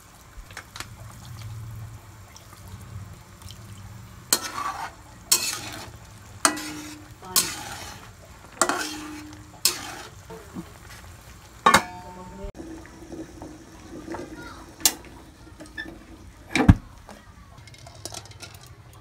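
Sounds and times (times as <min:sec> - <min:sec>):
sauce simmering: 0:00.0 - 0:19.0
spatula scraping a wok: 0:04.2 - 0:11.2
spatula clattering against pan: 0:04.3 - 0:08.0, 0:08.6 - 0:10.6.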